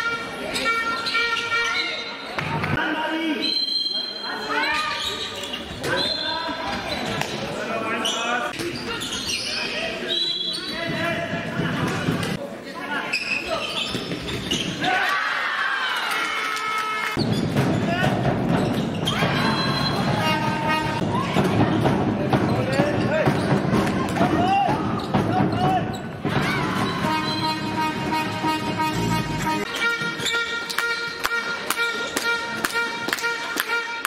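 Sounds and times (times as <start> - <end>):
ball bouncing on hall floor: 10.6 - 12.4, 17.2 - 27.5.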